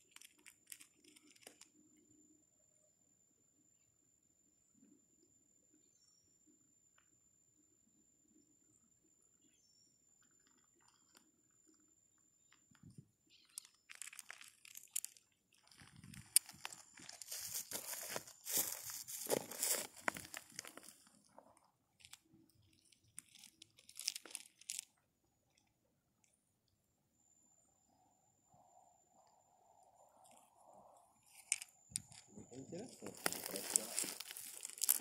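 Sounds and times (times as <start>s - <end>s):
gravel crunching and rattling: 12.4s - 25.0s, 31.3s - 35.0s.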